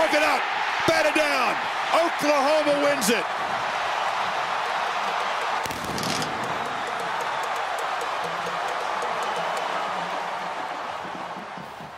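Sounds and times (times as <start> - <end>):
stadium crowd cheering: 0.0 - 11.9.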